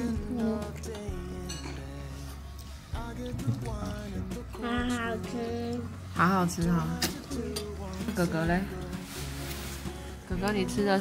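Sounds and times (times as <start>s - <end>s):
background music sustained notes: 0.0s - 11.0s
tableware clinking: 1.0s - 2.1s.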